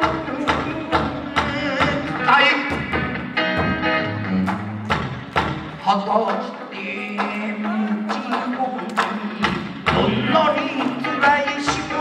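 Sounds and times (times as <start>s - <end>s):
person singing: 0.0s - 4.9s, 5.8s - 12.0s
electric guitar: 0.0s - 12.0s.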